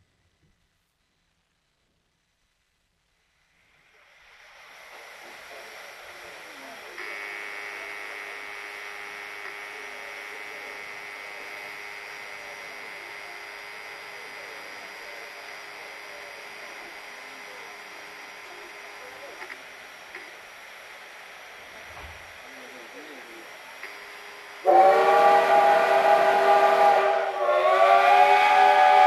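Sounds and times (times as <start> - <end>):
faint voices: 4.0 - 29.0.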